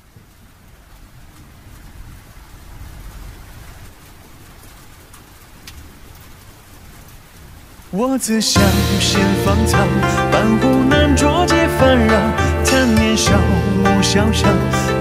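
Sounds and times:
rain-like hiss: 0:00.0 - 0:15.0
music with singing: 0:08.3 - 0:15.0
low rumble: 0:08.6 - 0:15.0.

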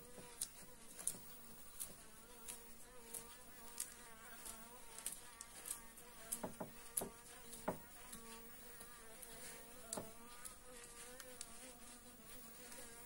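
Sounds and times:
bee buzzing: 0:00.0 - 0:13.0.

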